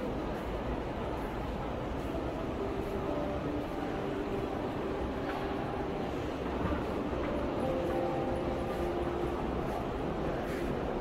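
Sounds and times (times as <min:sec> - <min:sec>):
low rumble of hall: 0:00.0 - 0:11.0.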